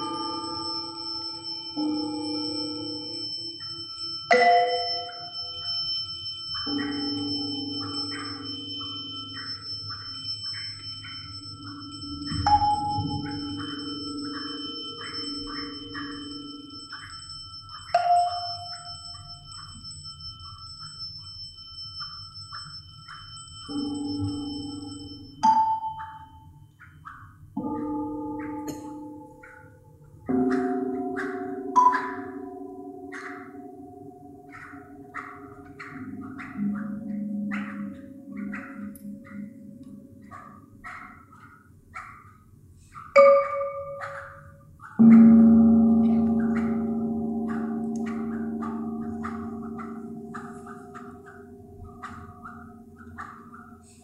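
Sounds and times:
tuned metal percussion notes: 0.0s - 54.0s.

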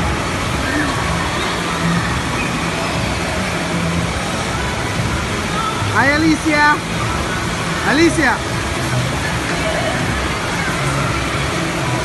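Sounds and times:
water rushing: 0.0s - 12.0s.

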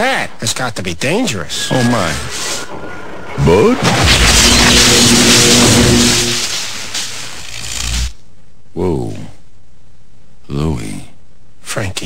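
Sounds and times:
steady buzzing hum: 0.4s - 11.8s
electrical crackling and sizzling: 1.5s - 8.2s.

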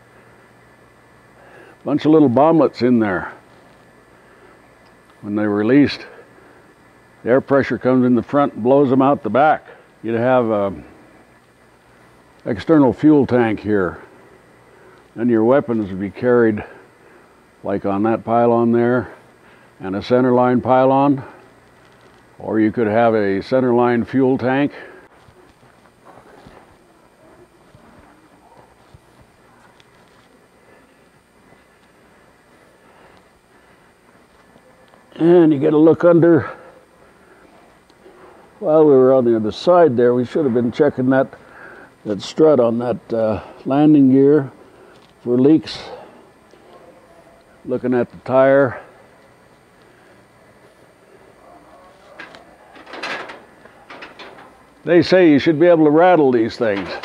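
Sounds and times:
footsteps on concrete floor: 25.0s - 26.8s.

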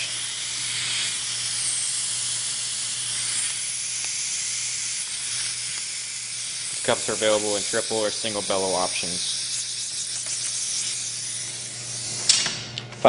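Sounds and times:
vacuum ejector hissing: 0.0s - 12.7s.

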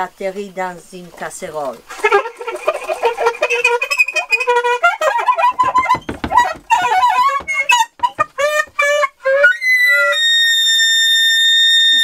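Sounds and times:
saxophone playing: 1.9s - 10.3s.

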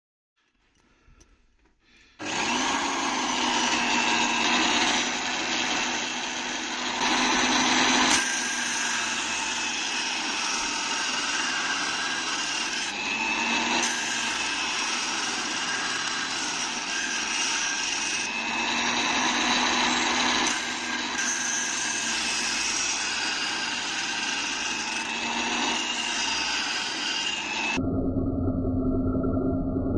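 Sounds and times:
abrasive wheel grinding metal: 2.2s - 27.8s
electric drill motor hum: 2.2s - 27.8s.

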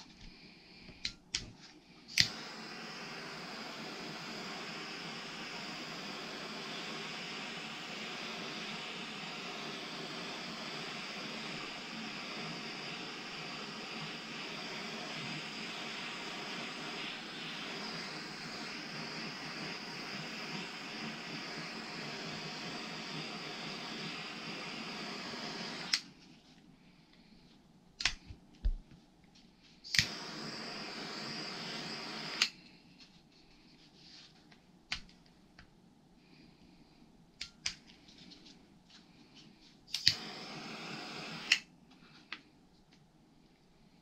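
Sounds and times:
gas torch hissing: 2.0s - 26.2s, 29.8s - 32.8s, 39.9s - 41.7s.

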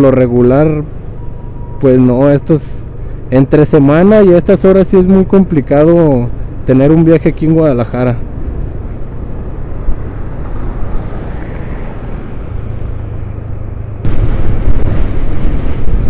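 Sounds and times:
city traffic: 0.0s - 16.0s.

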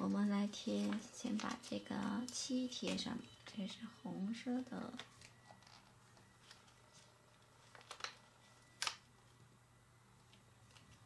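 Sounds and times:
stickers peeling clicks and rustles: 4.9s - 9.4s.

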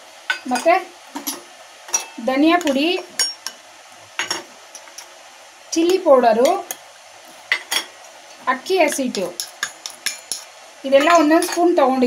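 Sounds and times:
woman speaking: 0.5s - 0.9s, 2.2s - 3.1s, 5.8s - 6.7s, 8.4s - 9.4s, 10.8s - 12.0s
spoon clicking on steel bowl: 9.4s - 11.6s.

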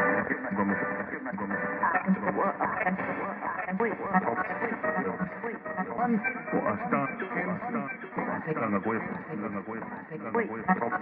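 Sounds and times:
chopped radio speech and music: 0.0s - 11.0s.

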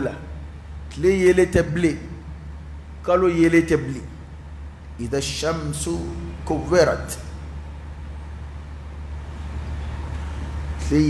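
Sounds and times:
rumbling background noise: 0.0s - 11.0s
steady low hum: 0.0s - 11.0s.

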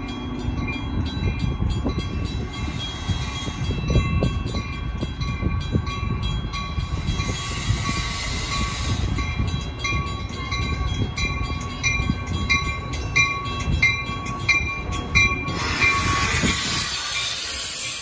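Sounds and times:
train rumbling: 0.0s - 18.0s
air hiss: 2.5s - 3.8s, 7.0s - 9.3s, 15.5s - 18.0s
bell ringing: 8.6s - 16.5s.

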